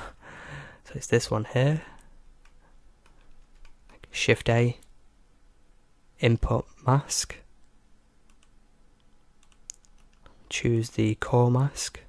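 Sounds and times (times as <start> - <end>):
computer mouse and key clicks: 1.9 - 4.1, 7.6 - 10.4.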